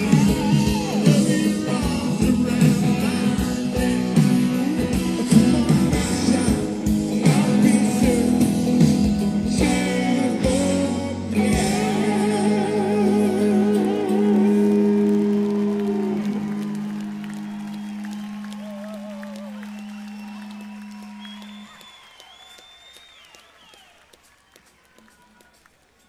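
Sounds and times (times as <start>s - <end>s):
rock band playing live: 0.0s - 21.7s
audience applause: 13.4s - 26.0s
audience whistling: 14.6s - 26.0s.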